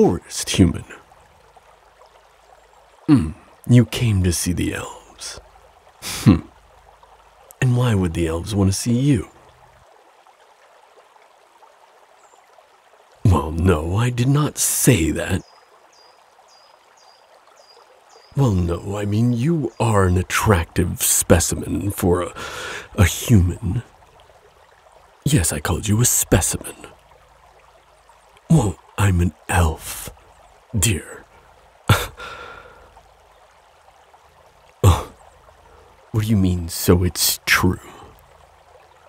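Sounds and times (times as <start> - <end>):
faint steady hiss: 0.0 - 39.0
man sighing: 3.1 - 3.4, 6.0 - 6.5, 22.4 - 23.0, 31.9 - 32.8, 34.8 - 35.2
water hiss: 6.0 - 6.5, 22.2 - 23.8, 31.9 - 33.1
man breathing out softly: 22.4 - 22.9, 31.9 - 32.9.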